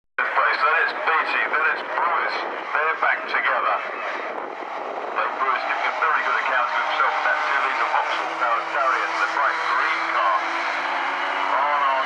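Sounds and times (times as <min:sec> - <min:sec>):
race commentary over loudspeakers: 0:00.2 - 0:12.0.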